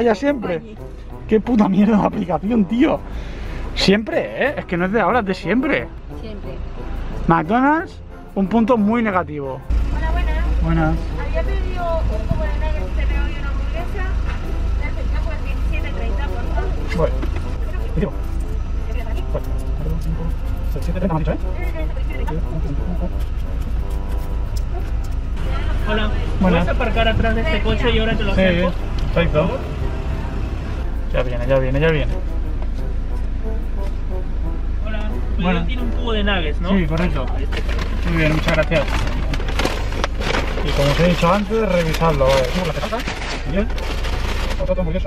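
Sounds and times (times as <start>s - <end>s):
car engine idling: 0.0s - 45.0s
faint music: 0.0s - 45.0s
voices talking: 3.8s - 33.4s
man talking: 34.9s - 39.2s.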